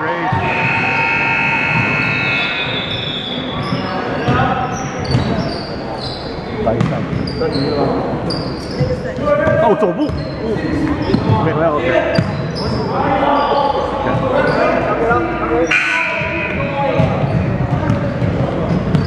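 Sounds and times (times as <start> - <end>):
indistinct voices: 0.0 - 19.0
sneaker squeaks: 0.2 - 19.0.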